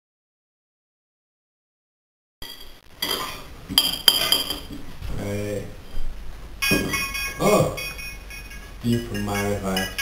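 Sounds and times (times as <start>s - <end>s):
forks scraping on plates: 2.4s - 4.8s.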